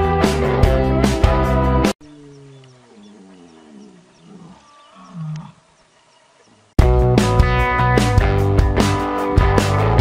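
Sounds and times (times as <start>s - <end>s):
low wavering animal growl: 2.0s - 5.6s.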